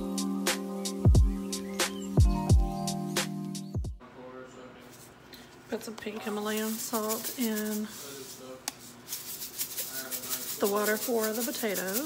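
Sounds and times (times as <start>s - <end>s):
woman talking: 5.7s - 8.0s, 10.6s - 12.0s
salt grains rattling in shaker: 6.4s - 12.0s.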